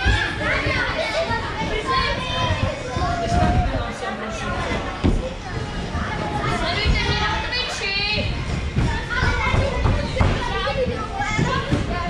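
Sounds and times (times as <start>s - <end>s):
children chattering: 0.0s - 12.0s
thuds of kids on trampolines: 8.4s - 12.0s.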